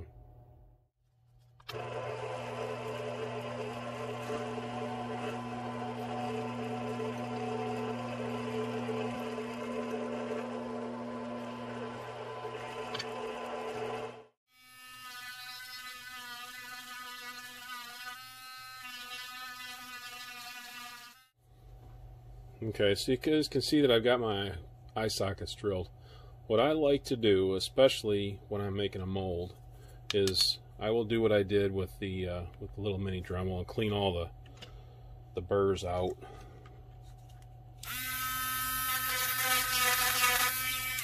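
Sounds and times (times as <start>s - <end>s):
drill press motor humming: 1.6s - 14.3s.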